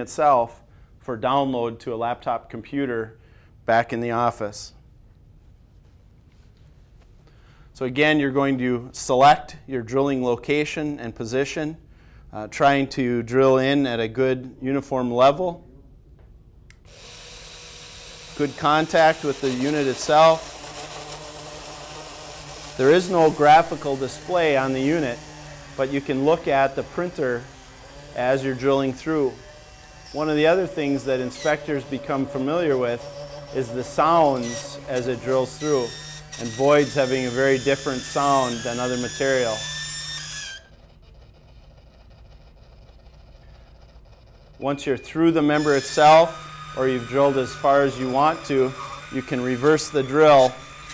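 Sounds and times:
click: 0:16.7 - 0:16.9
microdrill hissing: 0:16.9 - 0:40.7, 0:45.5 - 0:50.9
drill motor whining into timber: 0:16.9 - 0:41.0, 0:45.5 - 0:50.9.

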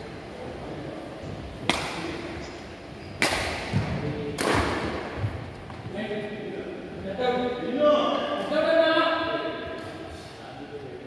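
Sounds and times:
racket hitting shuttlecock: 0:01.6 - 0:02.2, 0:03.2 - 0:05.1.

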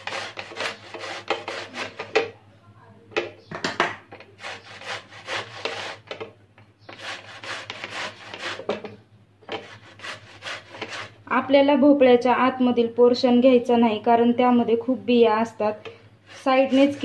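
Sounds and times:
gourd rasping on a metal grater: 0:00.0 - 0:02.2, 0:04.2 - 0:06.2, 0:06.9 - 0:08.8, 0:09.5 - 0:11.2, 0:16.2 - 0:17.0.

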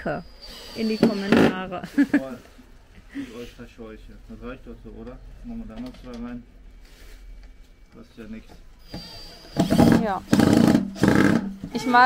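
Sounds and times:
cordless drill driving screws: 0:00.3 - 0:01.6, 0:08.8 - 0:11.5.

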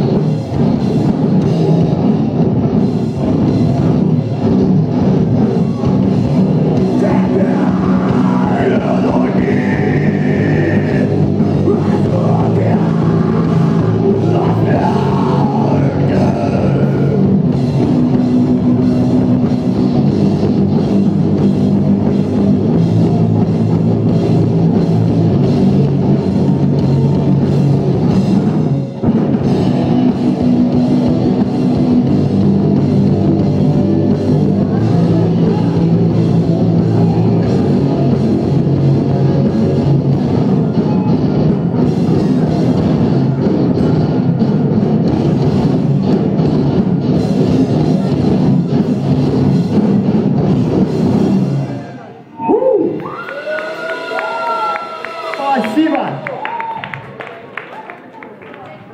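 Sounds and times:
live rock band playing: 0:00.0 - 0:51.8.

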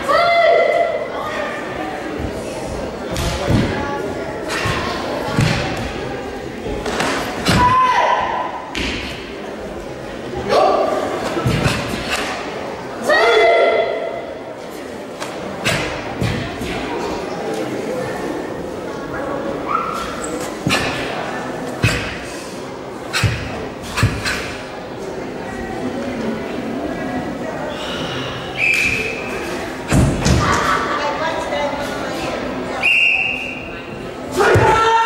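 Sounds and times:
murmur of spectators: 0:00.0 - 0:35.0.

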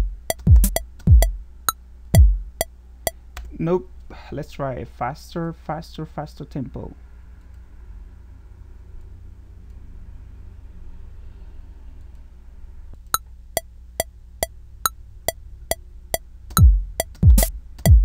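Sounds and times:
electronic kick drum: 0:00.0 - 0:01.4, 0:02.2 - 0:02.7, 0:16.6 - 0:18.0
metronome ticking: 0:00.0 - 0:03.2, 0:13.2 - 0:14.6, 0:15.3 - 0:18.0.

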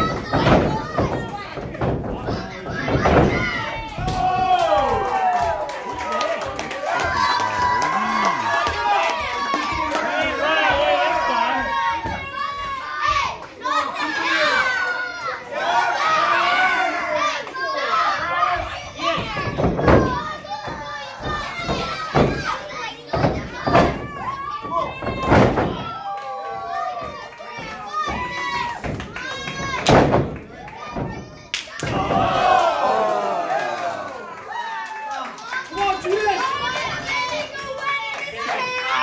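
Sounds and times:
wrestlers thudding onto mat: 0:00.0 - 0:05.6, 0:18.5 - 0:26.0, 0:26.8 - 0:32.5
children shouting and chattering: 0:00.0 - 0:39.0.

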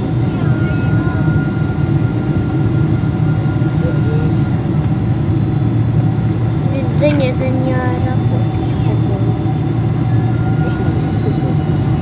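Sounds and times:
airliner engine and airflow rumble: 0:00.0 - 0:12.0
thin steady whine: 0:00.0 - 0:12.0.

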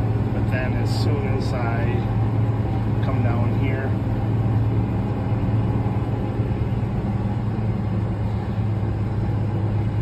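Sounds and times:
tractor diesel engine hum: 0:00.0 - 0:10.0.

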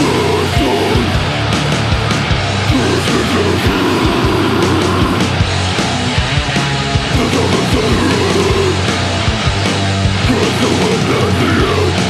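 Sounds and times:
bass on low notes: 0:00.0 - 0:12.0
distorted guitars: 0:00.0 - 0:12.0
fast drumming: 0:00.0 - 0:12.0.

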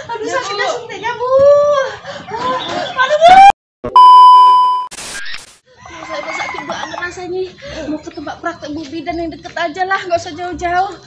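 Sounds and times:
chickens clucking: 0:01.9 - 0:03.1, 0:05.8 - 0:07.9.

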